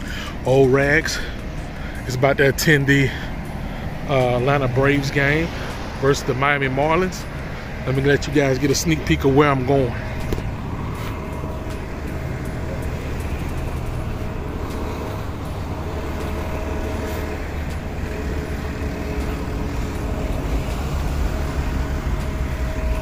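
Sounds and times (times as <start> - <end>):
bus running: 0.0 - 23.0
cars driving past: 0.0 - 23.0.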